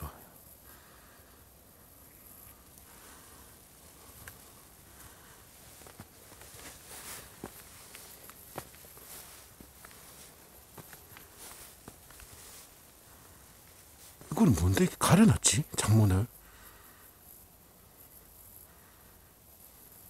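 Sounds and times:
steady hiss: 0:00.0 - 0:20.0
footsteps on concrete and ground: 0:03.9 - 0:12.9.

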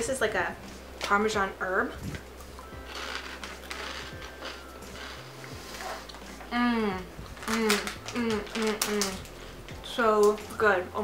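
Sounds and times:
crunchy snack chewing: 0:02.8 - 0:05.2.

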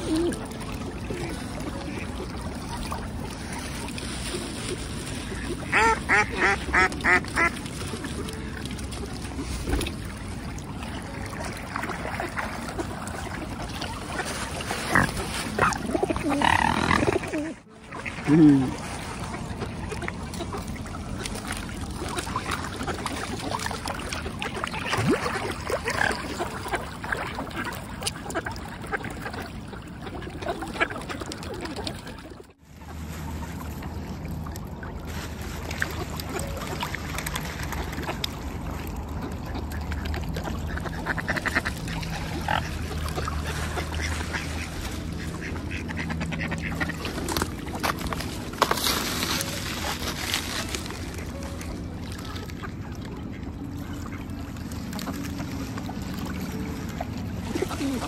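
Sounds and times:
birds splashing in water: 0:00.0 - 0:58.0
ducks quacking: 0:05.4 - 0:07.6, 0:14.1 - 0:20.8, 0:39.1 - 0:48.0.

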